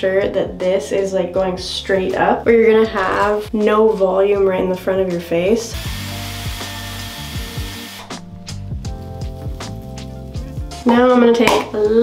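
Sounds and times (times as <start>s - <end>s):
music with drum beat: 2.8s - 12.0s
hot-air styler blowing: 5.7s - 8.5s.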